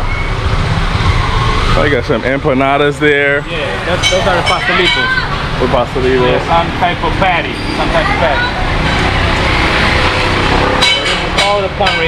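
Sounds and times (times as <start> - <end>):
street traffic noise: 0.0 - 12.0
metallic clank: 10.8 - 12.0.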